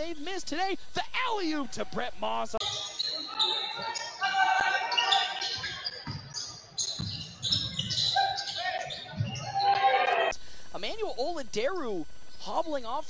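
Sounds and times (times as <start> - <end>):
players and crowd voices: 2.6 - 10.4
basketball bouncing on hardwood: 6.9 - 8.0.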